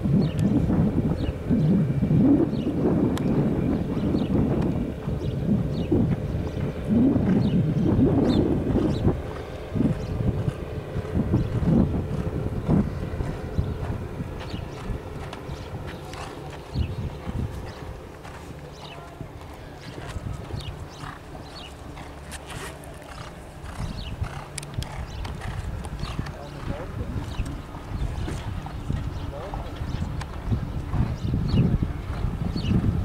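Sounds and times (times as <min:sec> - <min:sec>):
horse hoofbeats on grass: 0:09.4 - 0:27.5.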